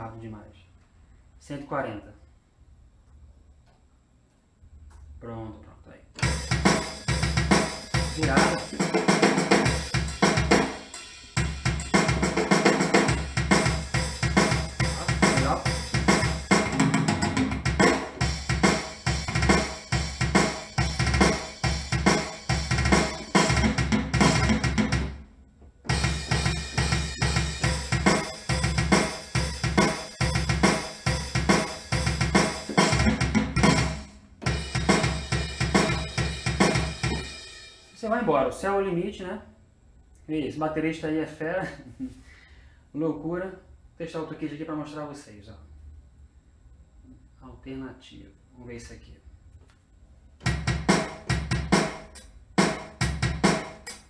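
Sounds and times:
fast rock drum beat: 0:06.2 - 0:25.2, 0:25.9 - 0:37.8, 0:50.4 - 0:54.0.

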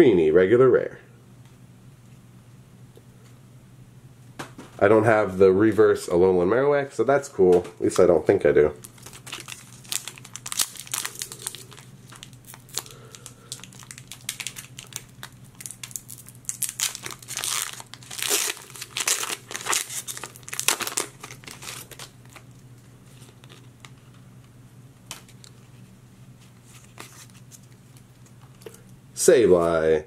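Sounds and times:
foil wrapper crinkling: 0:08.7 - 0:24.2, 0:26.4 - 0:28.8.

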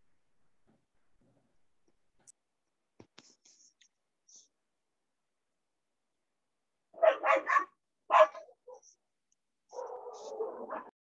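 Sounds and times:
dog barking: 0:07.0 - 0:09.0, 0:09.7 - 0:10.9.

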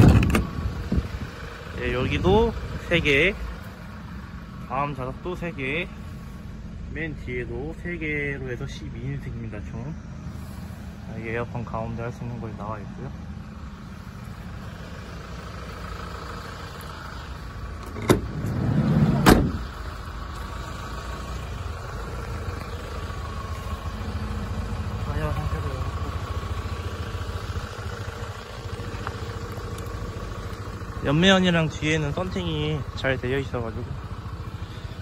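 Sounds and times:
diesel engine idling: 0:00.0 - 0:35.0
latch clicking: 0:17.8 - 0:18.4
sliding door rolling and banging shut: 0:18.0 - 0:19.6.

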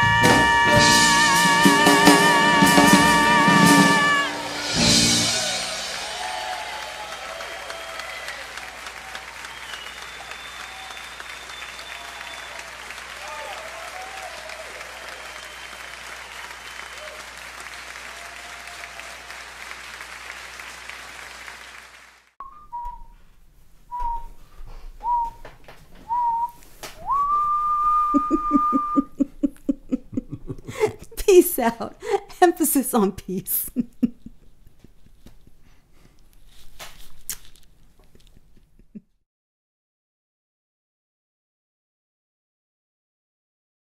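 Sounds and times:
person whistling notes: 0:00.0 - 0:05.7, 0:09.5 - 0:12.6, 0:22.4 - 0:23.2, 0:23.9 - 0:25.4, 0:26.0 - 0:29.2
cheers and whistles: 0:00.0 - 0:20.0, 0:26.1 - 0:29.1
theatre audience applauding: 0:00.0 - 0:22.4.

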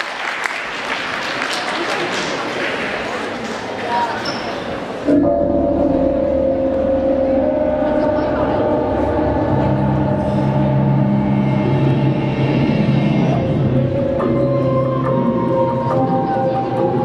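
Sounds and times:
deep bass note: 0:05.2 - 0:14.7.

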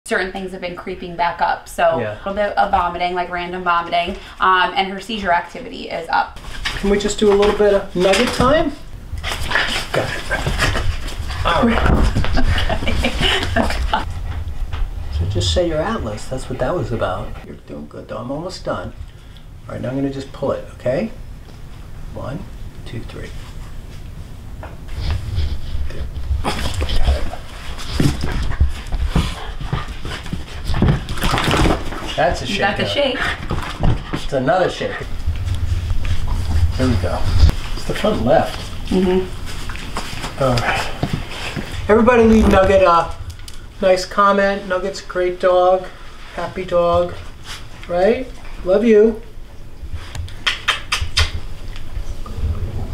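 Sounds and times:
low thuds: 0:52.2 - 0:52.9.

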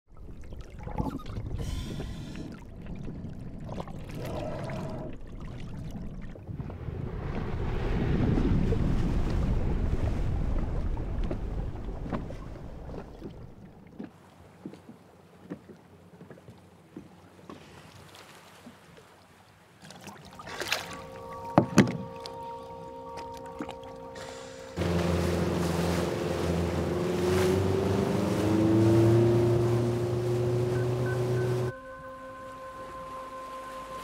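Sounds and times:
water rushing around boat: 0:00.1 - 0:34.0
steady sustained tones: 0:20.8 - 0:27.2, 0:29.5 - 0:34.0.

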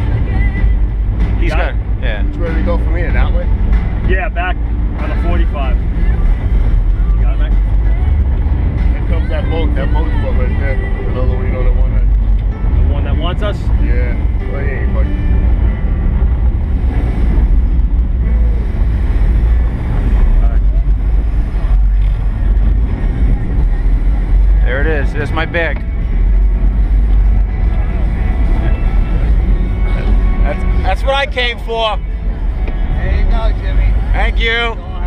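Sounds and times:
boat engines idling: 0:00.0 - 0:35.0.

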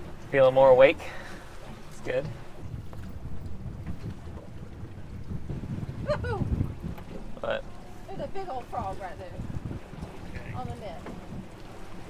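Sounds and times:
wind buffeting microphone: 0:01.0 - 0:12.0.

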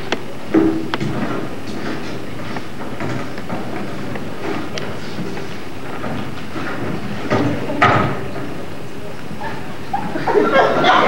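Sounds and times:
footsteps on stage floor: 0:00.0 - 0:10.3
steady noisy background: 0:00.0 - 0:11.0.

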